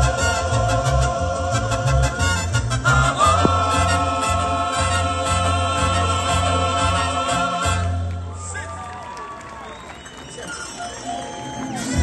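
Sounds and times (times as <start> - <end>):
crowd chatter: 3.2 - 12.0.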